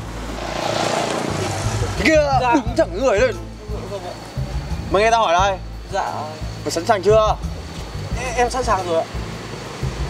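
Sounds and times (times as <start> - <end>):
background music: 0.0 - 10.0
vehicle passing by: 0.0 - 10.0.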